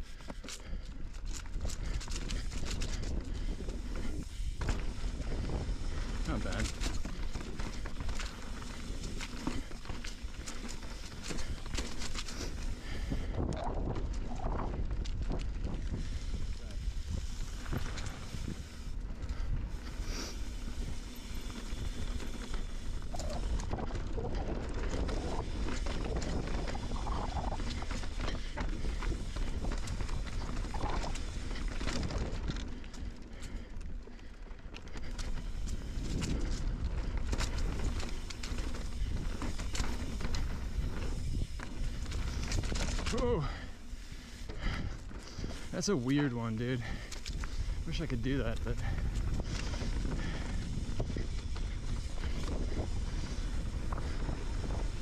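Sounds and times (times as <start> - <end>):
bike rattles and knocks: 0.0 - 55.0
tyres and wind rumble: 0.0 - 55.0.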